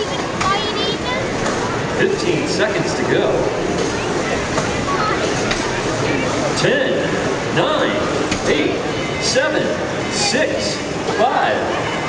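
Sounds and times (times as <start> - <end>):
indistinct voices: 0.0 - 12.0
noisy hall background: 0.0 - 12.0.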